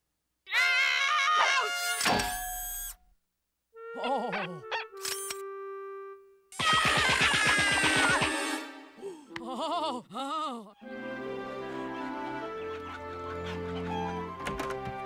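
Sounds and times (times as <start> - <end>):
cartoon music: 3.8 - 8.9
slapstick sound effects: 6.6 - 8.8.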